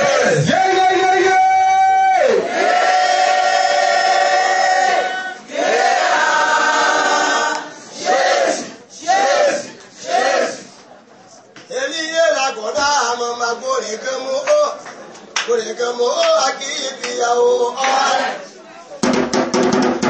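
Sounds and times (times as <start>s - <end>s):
group of voices chanting: 2.4s - 10.7s.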